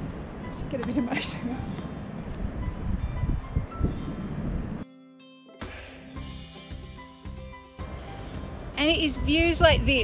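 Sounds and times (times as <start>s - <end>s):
wind buffeting microphone: 0.0s - 4.8s, 8.8s - 10.0s
soft music with held tones: 0.4s - 9.9s.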